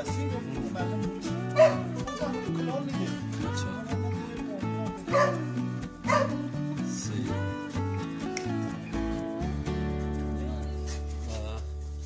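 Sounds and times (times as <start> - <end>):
background music: 0.0 - 12.0
dog barking: 1.6 - 1.9, 5.1 - 6.4.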